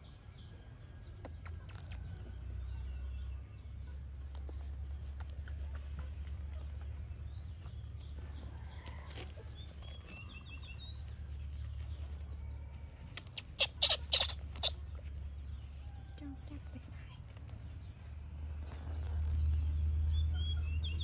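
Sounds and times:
sharp crackling rips: 13.1s - 14.8s
faint chirps: 13.2s - 14.8s.

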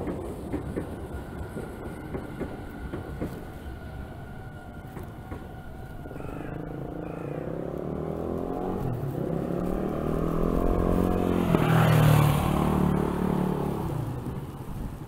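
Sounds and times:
vehicle passing by: 0.0s - 15.0s.

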